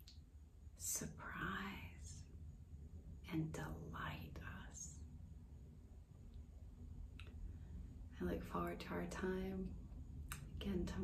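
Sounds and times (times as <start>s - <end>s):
faint low rumble: 0.0s - 11.0s
woman speaking softly: 0.8s - 2.2s, 3.2s - 5.0s, 8.1s - 9.8s, 10.4s - 11.0s.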